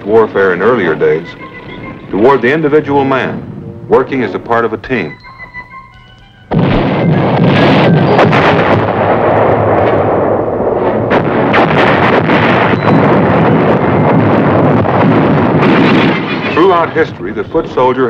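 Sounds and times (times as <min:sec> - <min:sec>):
artillery fire and explosions: 0:00.0 - 0:04.6, 0:06.5 - 0:18.0.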